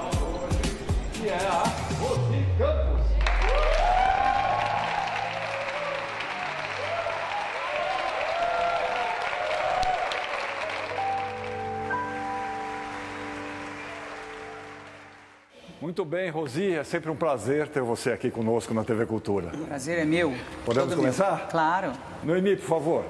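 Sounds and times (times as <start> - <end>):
studio audience applauding: 3.2 - 15.5.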